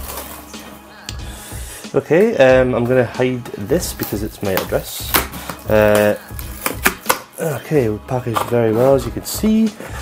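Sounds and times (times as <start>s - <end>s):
cardboard rustling and scraping: 0.0s - 0.5s, 8.1s - 10.0s
quiet background music: 0.0s - 10.0s.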